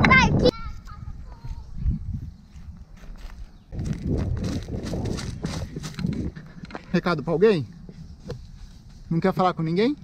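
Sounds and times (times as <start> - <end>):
footsteps on grass and leaves: 0.7 - 7.2, 7.8 - 9.8
camera rumble: 3.3 - 7.0.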